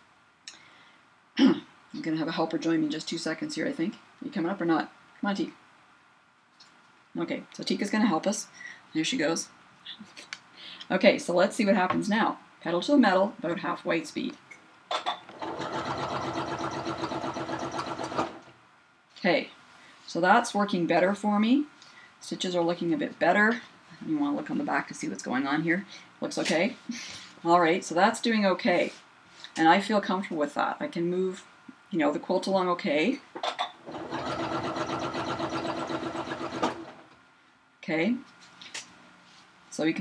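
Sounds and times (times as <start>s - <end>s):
sewing machine stitching: 15.3s - 18.5s, 33.8s - 37.0s.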